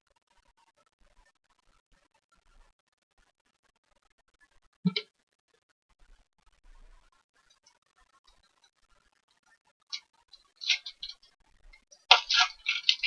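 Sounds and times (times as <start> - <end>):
cards rustling by hand: 10.6 - 11.2, 12.1 - 13.0.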